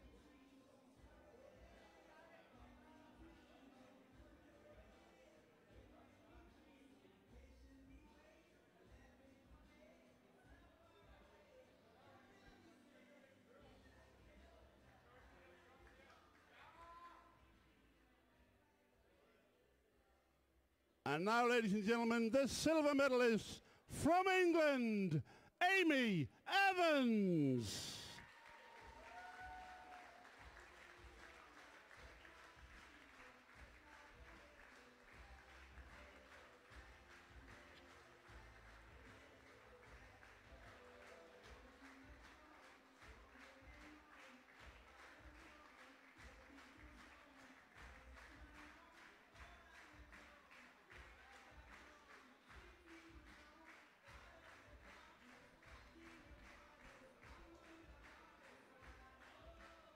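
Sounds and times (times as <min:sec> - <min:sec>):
quiet background music: 0:00.0 - 0:20.3
faint audience applause: 0:21.1 - 0:59.9.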